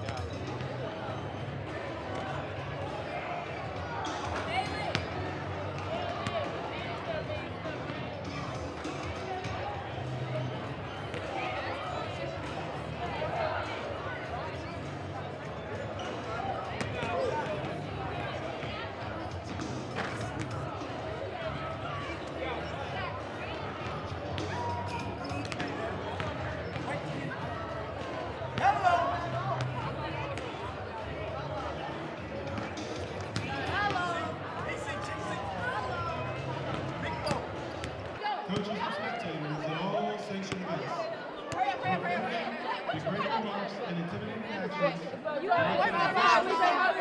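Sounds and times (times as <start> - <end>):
crowd chatter: 0.0 - 47.0
murmur of spectators: 0.0 - 47.0.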